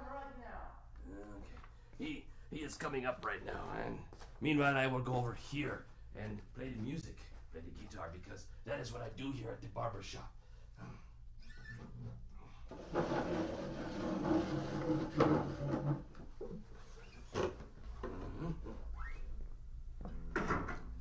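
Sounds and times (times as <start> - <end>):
short rising creak: 11.4 - 17.4, 18.9 - 19.4.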